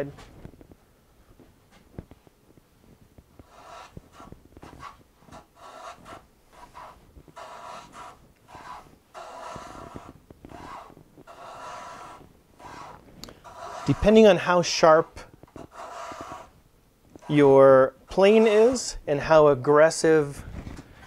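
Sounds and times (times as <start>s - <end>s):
hand plane cutting wood: 3.4s - 14.3s, 15.6s - 16.6s.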